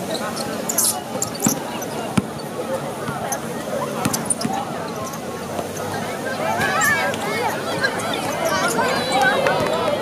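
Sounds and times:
crowd chatter: 0:00.0 - 0:10.0
basketball bouncing on hard court: 0:01.2 - 0:02.4, 0:04.0 - 0:04.6.

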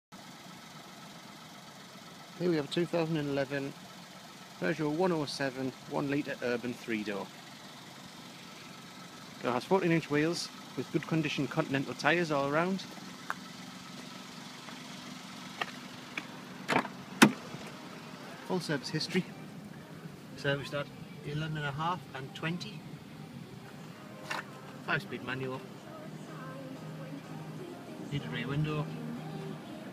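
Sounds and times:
small car engine idling: 0:00.1 - 0:29.9.

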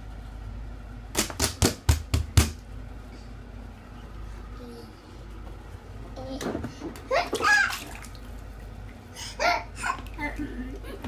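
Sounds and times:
baby's hands slapping water: 0:07.0 - 0:08.4.

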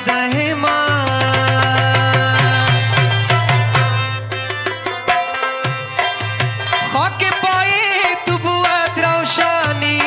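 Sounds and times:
man singing: 0:00.0 - 0:03.5, 0:06.7 - 0:10.0
tabla strokes: 0:00.0 - 0:10.0.

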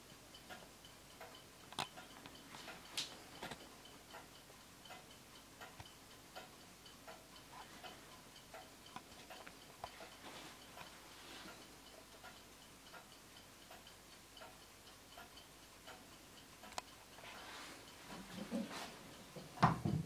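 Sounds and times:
wall clock ticking: 0:00.0 - 0:20.0.

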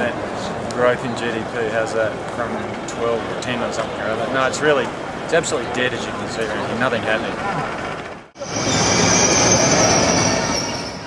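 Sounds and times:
train rushing noise: 0:06.7 - 0:11.0
electric train high-pitched whine: 0:08.4 - 0:11.0.

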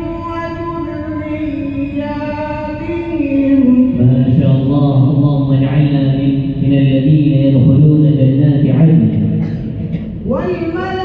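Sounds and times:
man reciting in melodic chant: 0:03.0 - 0:09.6.

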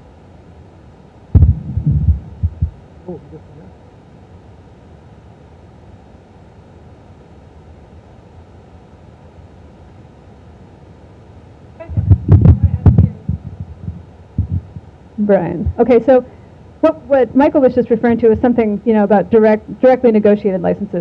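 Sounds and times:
low room hum: 0:00.0 - 0:21.0
thumps on microphone: 0:01.4 - 0:02.8, 0:11.8 - 0:14.8
faint voice: 0:03.1 - 0:03.8, 0:11.8 - 0:13.6.

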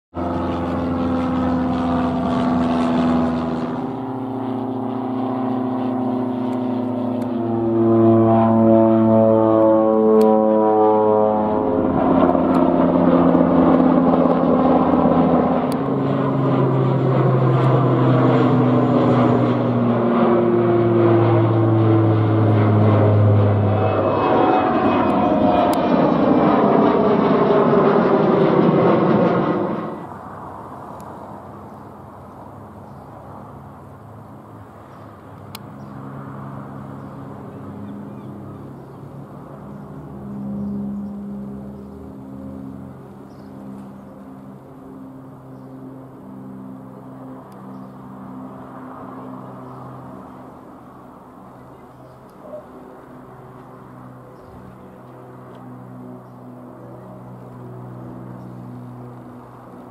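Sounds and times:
propeller aircraft droning: 0:00.1 - 0:59.9.

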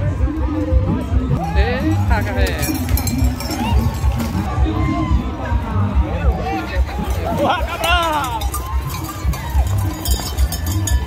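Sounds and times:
cowbell clanking: 0:01.4 - 0:04.5, 0:07.1 - 0:11.0
horse hooves galloping on dirt: 0:06.9 - 0:11.0
man shouting: 0:07.3 - 0:08.5.

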